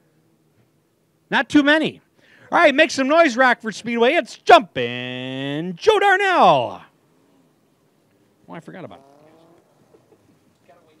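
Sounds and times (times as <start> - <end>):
small scattered noises: 0.0 - 11.0
man speaking: 1.3 - 6.9.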